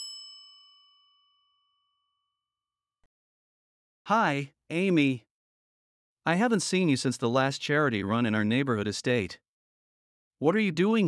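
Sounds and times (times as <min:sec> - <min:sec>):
electronic bell-like chime: 0:00.0 - 0:02.3.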